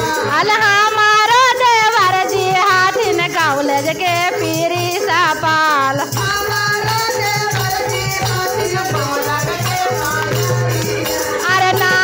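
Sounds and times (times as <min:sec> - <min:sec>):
woman singing devotional song: 0:00.0 - 0:12.0.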